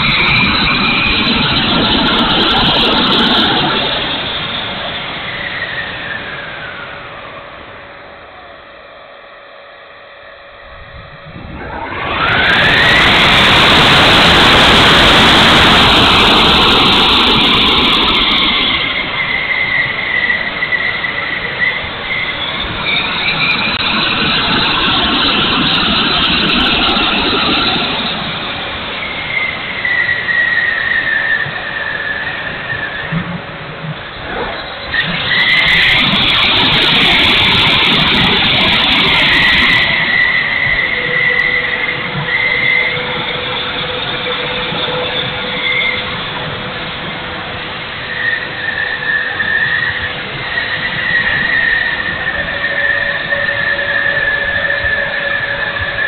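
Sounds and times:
model jet fan whining: 0:00.0 - 0:56.0.

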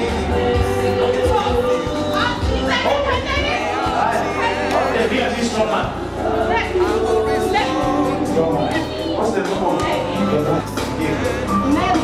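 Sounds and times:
background music: 0:00.0 - 0:12.0
crowd noise: 0:00.0 - 0:12.0.

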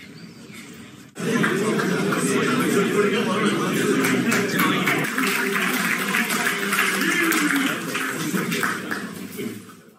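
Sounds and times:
crowd clapping: 0:01.2 - 0:09.8.

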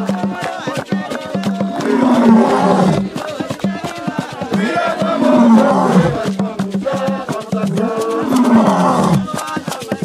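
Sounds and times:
hands clapping in rhythm: 0:00.0 - 0:10.0
men singing together: 0:00.0 - 0:10.0.

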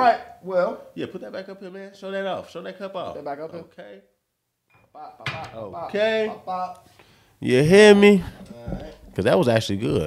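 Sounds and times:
man speaking: 0:05.0 - 0:10.0.

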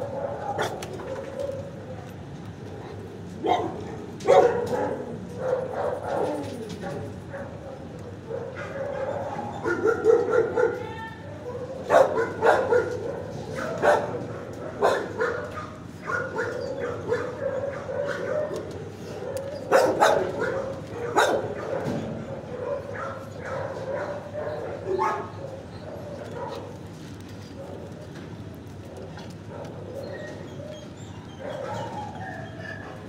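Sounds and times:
dogs barking: 0:00.0 - 0:26.9, 0:27.5 - 0:28.2, 0:28.8 - 0:33.0.

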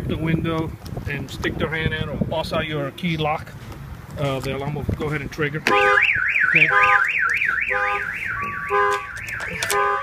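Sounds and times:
car alarm siren warbling: 0:05.8 - 0:10.0
steady chord of beeps: 0:06.0 - 0:10.0.

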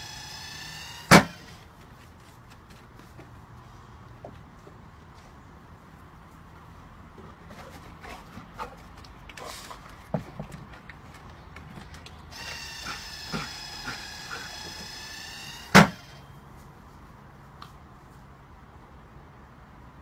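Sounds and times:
ball launcher firing: 0:00.0 - 0:01.6, 0:14.8 - 0:16.2
ball launcher motor whining: 0:00.0 - 0:01.7, 0:12.3 - 0:16.3
dog claws clicking on wooden deck: 0:07.5 - 0:14.5.

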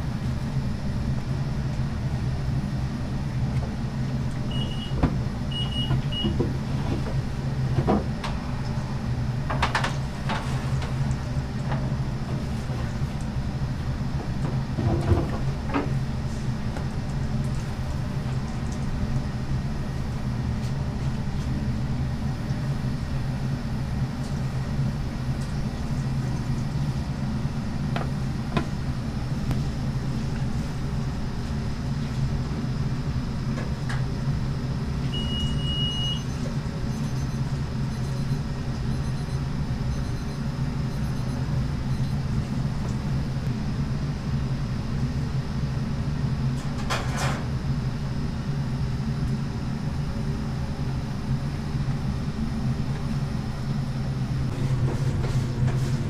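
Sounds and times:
kitchen machinery humming: 0:00.0 - 0:56.0.

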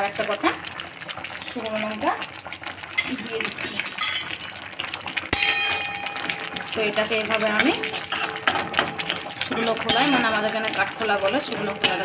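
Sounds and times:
metal spoon striking metal pan: 0:05.3 - 0:12.0.

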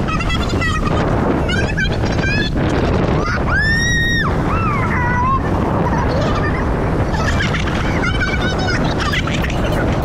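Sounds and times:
wind rushing on microphone: 0:00.0 - 0:10.0
riders shrieking and yelling: 0:03.1 - 0:05.7.

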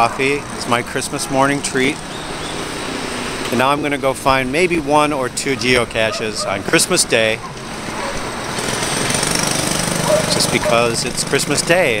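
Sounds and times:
loud mechanical rattle: 0:08.2 - 0:11.8.

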